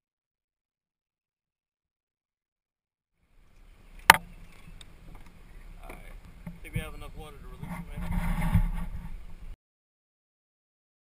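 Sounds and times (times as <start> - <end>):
small clicks and low rumbling: 3.4 - 9.6
man talking: 5.8 - 8.2.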